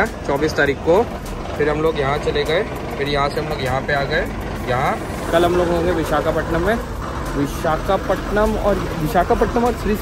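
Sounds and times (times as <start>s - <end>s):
bus engine rumble: 0.0s - 10.0s
man speaking: 0.0s - 10.0s.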